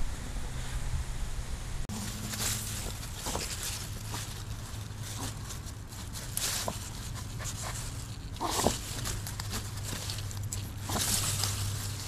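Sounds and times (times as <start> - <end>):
dog rustling through leaves: 1.9 - 12.0.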